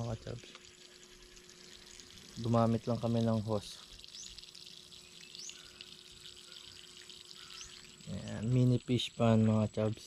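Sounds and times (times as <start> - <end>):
water running from a hose: 0.0 - 10.0
rising bird chirps: 4.1 - 8.2.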